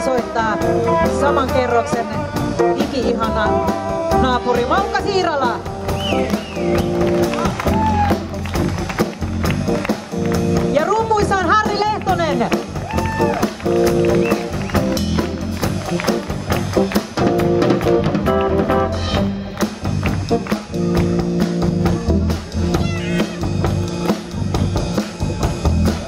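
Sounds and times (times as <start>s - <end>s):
drum kit beat: 0.0s - 26.0s
electric bass: 0.0s - 26.0s
live band playing: 0.0s - 26.0s.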